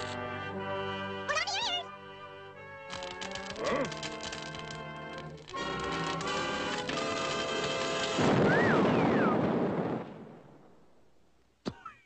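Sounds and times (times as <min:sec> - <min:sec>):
cartoon orchestral music: 0:00.1 - 0:07.3.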